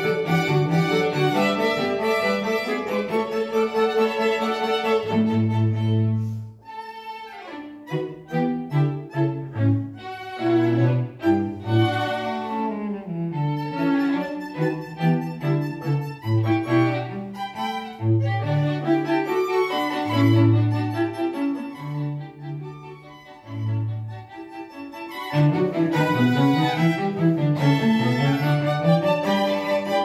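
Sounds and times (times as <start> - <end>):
low cello notes: 0.0 - 30.0
string quartet playing: 0.0 - 30.0.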